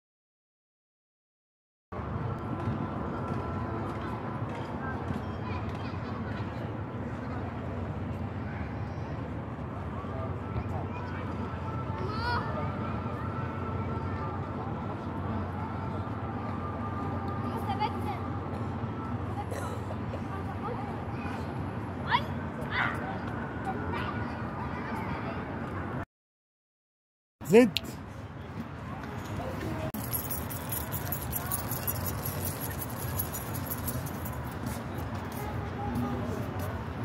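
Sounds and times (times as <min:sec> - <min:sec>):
outdoor background noise: 0:02.0 - 0:26.0, 0:27.4 - 0:37.0.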